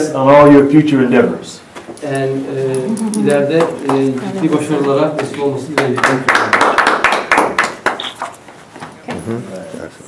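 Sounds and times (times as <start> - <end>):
small group clapping: 3.0 - 8.4.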